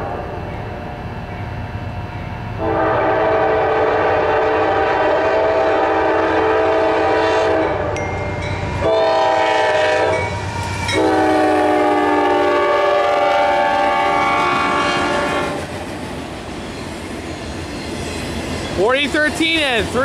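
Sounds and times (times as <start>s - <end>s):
locomotive air horn blasts: 2.6s - 8.0s, 8.8s - 15.6s
train wheels clacking over rails: 14.2s - 20.0s.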